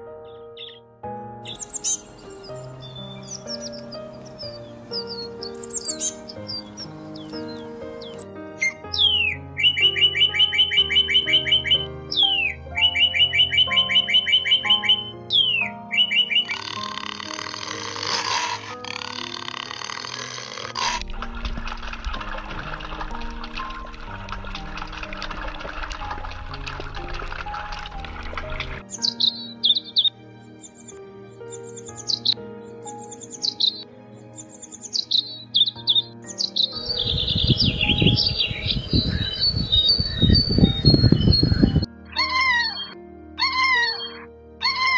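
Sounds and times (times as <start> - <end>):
background music: 0.0 - 44.9
high falling bird chirps: 0.2 - 25.2, 26.5 - 44.9
bird whistle and trill: 1.4 - 17.7, 34.4 - 44.9
rushing noise: 36.8 - 41.0.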